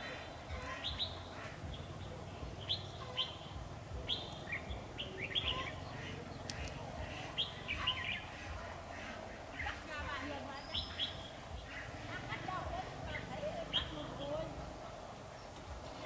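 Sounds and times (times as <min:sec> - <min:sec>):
birds chirping: 0:00.0 - 0:16.0.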